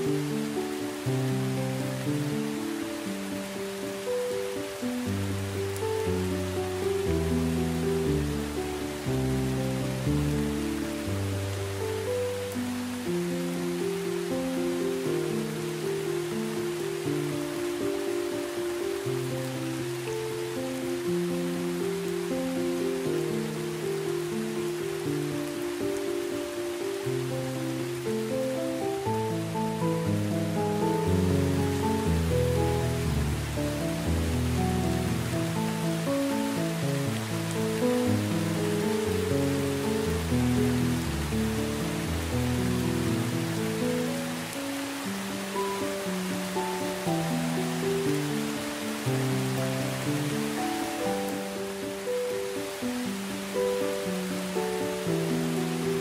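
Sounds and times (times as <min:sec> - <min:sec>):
heavy rain hissing: 0:00.0 - 0:56.0
slow calm instrumental music: 0:00.0 - 0:56.0.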